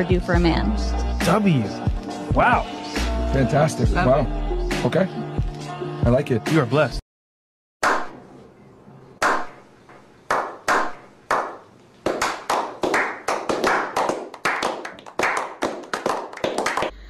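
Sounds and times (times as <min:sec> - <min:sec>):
group clapping: 0:07.8 - 0:08.2, 0:09.2 - 0:09.6, 0:10.3 - 0:17.0.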